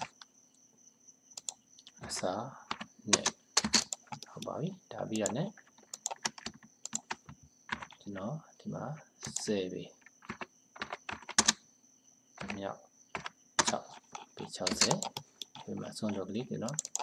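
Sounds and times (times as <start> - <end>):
keyboard and mouse clicks: 0.0 - 0.3, 1.4 - 4.6, 5.2 - 8.2, 9.2 - 11.6, 13.2 - 17.0
people talking: 2.0 - 3.3, 4.3 - 5.5, 13.7 - 16.8.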